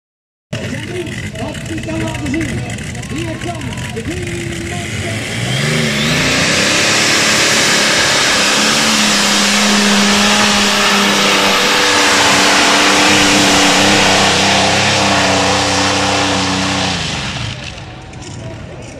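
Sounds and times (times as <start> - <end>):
tractor engine at full throttle: 0.5 - 18.9.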